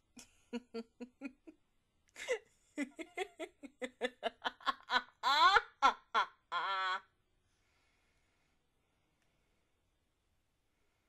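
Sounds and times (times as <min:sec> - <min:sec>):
high-pitched laughter: 0:00.6 - 0:01.5, 0:02.2 - 0:07.0.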